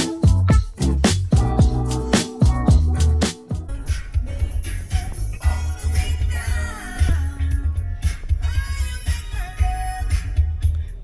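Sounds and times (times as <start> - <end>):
song with heavy bass on car stereo: 0.0 - 11.0
woman singing along: 4.2 - 10.2.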